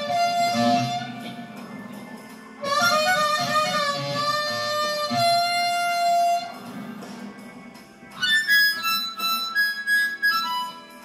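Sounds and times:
blues harmonica note: 0:00.0 - 0:01.4, 0:02.6 - 0:06.8, 0:08.2 - 0:11.0.

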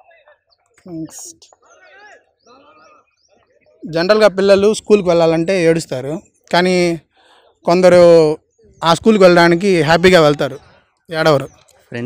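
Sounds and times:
man speaking: 0:03.8 - 0:07.0, 0:07.7 - 0:12.0.

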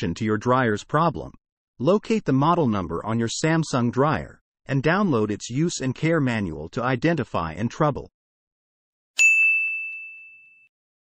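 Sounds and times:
bright high chime: 0:09.2 - 0:10.7.

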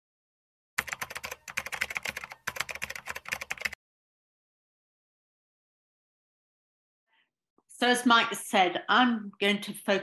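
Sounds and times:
keyboard typing clicks: 0:00.8 - 0:03.8.

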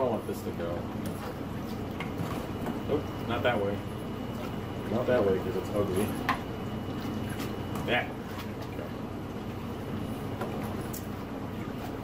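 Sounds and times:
aquarium water churning: 0:00.0 - 0:12.0
low steady pump hum: 0:00.0 - 0:12.0.

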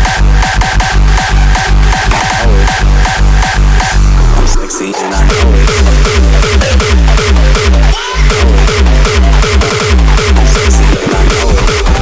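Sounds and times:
distorted kick drums: 0:00.0 - 0:12.0
high synth stabs: 0:00.0 - 0:12.0.

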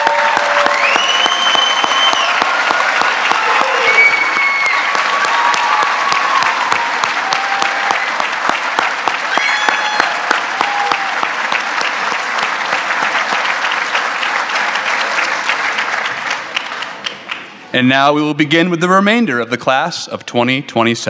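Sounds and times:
cheers: 0:00.0 - 0:15.8
large audience applauding: 0:00.0 - 0:17.7
whistles: 0:00.6 - 0:02.5, 0:03.8 - 0:04.9.

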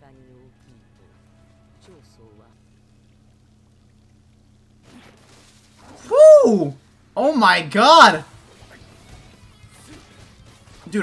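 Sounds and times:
low steady hum: 0:00.0 - 0:08.2
short voice-like sound: 0:06.0 - 0:08.2.

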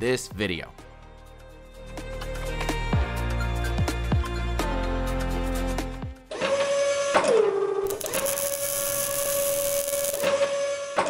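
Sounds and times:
robot arm motors whining: 0:07.8 - 0:11.0
tool hissing on metal plate: 0:07.9 - 0:10.8.

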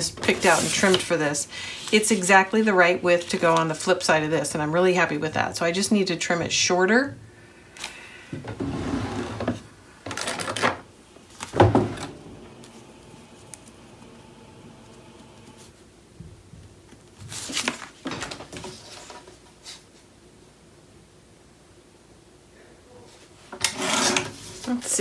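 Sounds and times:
paper rustling: 0:00.2 - 0:01.2, 0:16.9 - 0:19.8.

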